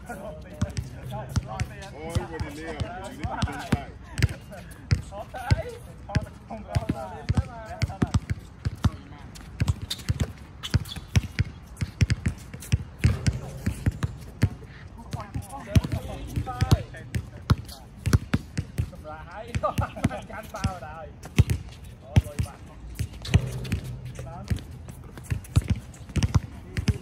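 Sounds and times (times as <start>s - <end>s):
players' voices: 0.0s - 9.4s, 13.0s - 27.0s
basketballs bouncing on hard court: 0.5s - 27.0s.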